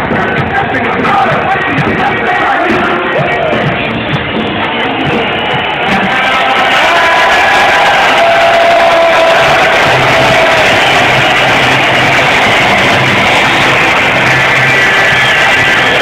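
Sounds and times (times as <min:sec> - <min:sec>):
loud music over arena speakers: 0:00.0 - 0:16.0.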